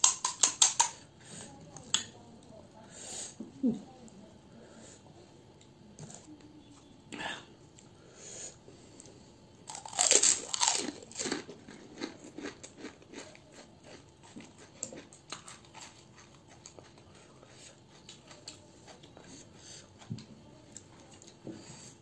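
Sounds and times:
close-up chewing: 0:09.0 - 0:21.9
crisp shell crunching: 0:09.7 - 0:13.2.

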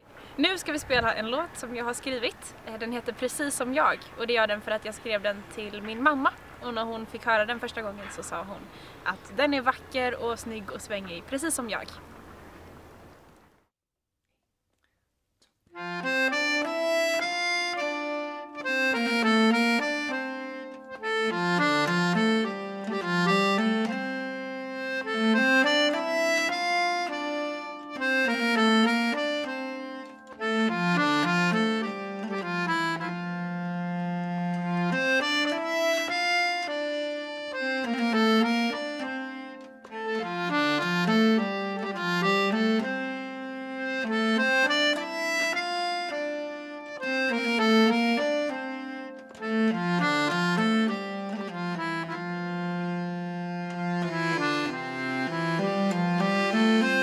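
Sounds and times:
accordion: 0:00.0 - 0:12.0, 0:15.7 - 0:57.0
hurdy-gurdy: 0:15.7 - 0:57.0.

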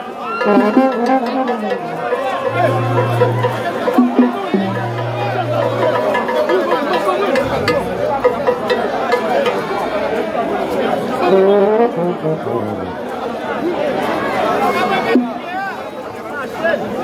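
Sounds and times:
loud crowd chatter: 0:00.0 - 0:17.0
low horn notes: 0:00.4 - 0:09.9, 0:11.2 - 0:13.1.

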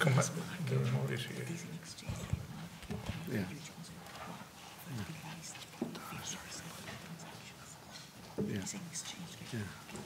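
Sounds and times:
quiet murmured speech: 0:00.0 - 0:10.0.

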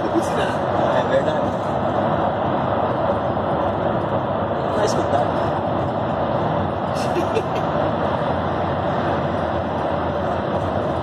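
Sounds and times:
vehicle road and engine noise: 0:00.0 - 0:11.0.

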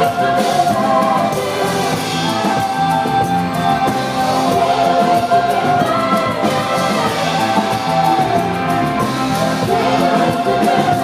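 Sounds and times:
voices singing harmony: 0:00.0 - 0:11.0.

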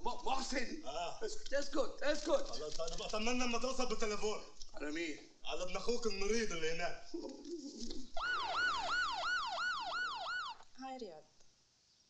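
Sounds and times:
ambulance siren yelping: 0:08.2 - 0:10.6.

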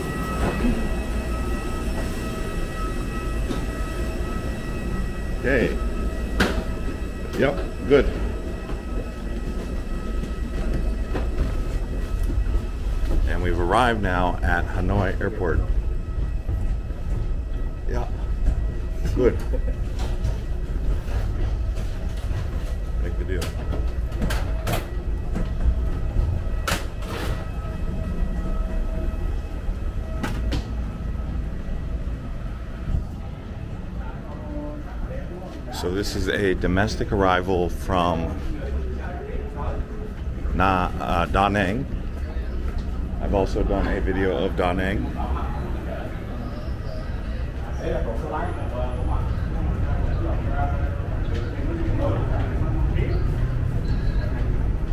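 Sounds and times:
faint high tones: 0:00.0 - 0:50.7
low mechanical rumble and hum: 0:00.0 - 0:54.9.

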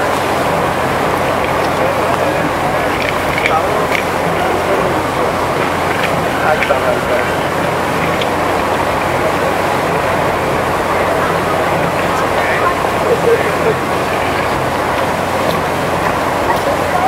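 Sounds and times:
indistinct voices: 0:00.0 - 0:17.0
traffic: 0:00.0 - 0:17.0.

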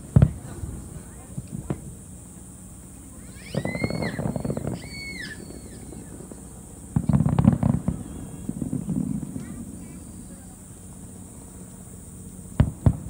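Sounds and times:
fireworks crackling: 0:00.0 - 0:13.0
high whistling tones: 0:03.2 - 0:06.3.

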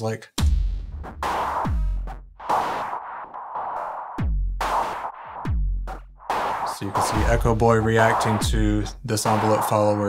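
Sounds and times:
deep kick drum: 0:00.4 - 0:02.8, 0:04.1 - 0:09.1
noisy snare hits: 0:00.4 - 0:10.0.

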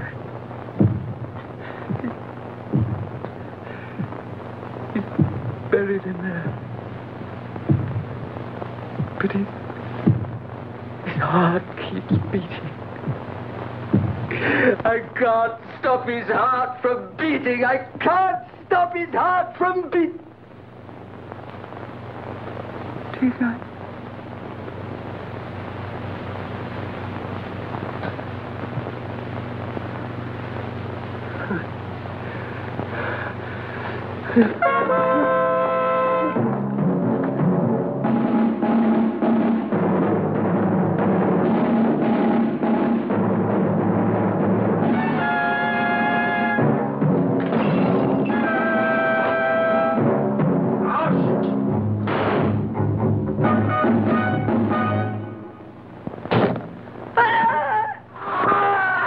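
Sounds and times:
timpani: 0:34.4 - 0:55.6.

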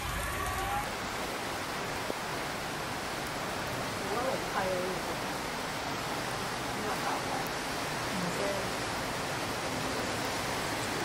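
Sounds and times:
heavy rain hissing: 0:00.0 - 0:11.0.

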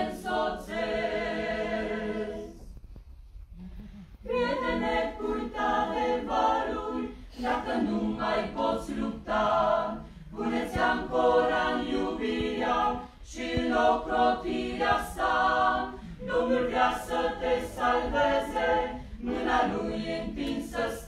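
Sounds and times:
choir singing unaccompanied: 0:00.0 - 0:02.7, 0:04.3 - 0:21.0.

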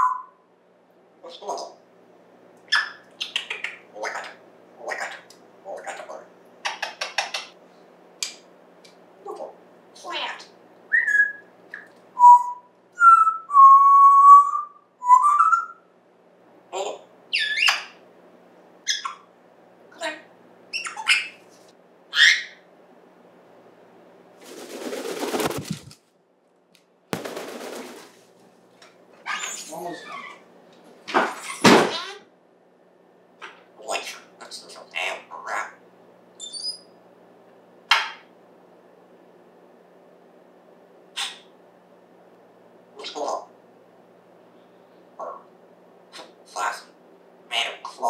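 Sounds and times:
parrot whistling: 0:00.0 - 0:00.4, 0:10.9 - 0:11.5, 0:12.2 - 0:15.8, 0:17.3 - 0:18.0, 0:20.7 - 0:21.4, 0:22.1 - 0:22.6, 0:36.4 - 0:37.0
parrot clicks and squawks: 0:06.6 - 0:07.5.

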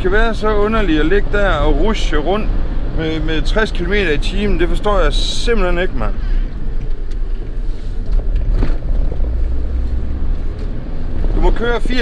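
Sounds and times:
minibus engine and road rumble: 0:00.0 - 0:12.0.

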